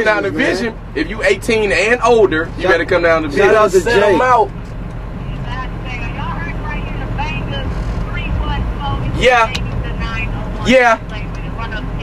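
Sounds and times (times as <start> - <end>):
people talking: 0.0 - 4.5, 5.2 - 12.0
vehicle rumble inside cabin: 0.0 - 12.0.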